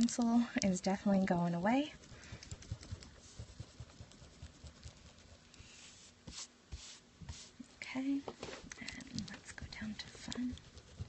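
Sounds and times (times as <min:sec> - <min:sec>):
eraser rubbing on paper: 0:01.0 - 0:07.6, 0:09.2 - 0:11.0.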